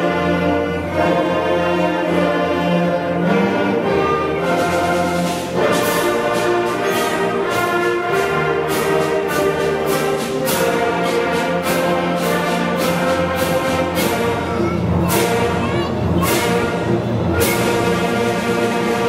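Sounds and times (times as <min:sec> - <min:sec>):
concert band playing: 0:00.0 - 0:19.0
percussion strikes: 0:04.0 - 0:19.0.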